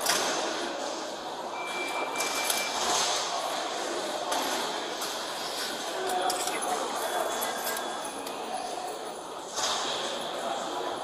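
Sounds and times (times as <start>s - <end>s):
lobby background noise: 0.0s - 11.0s
electronic beep: 1.5s - 2.9s.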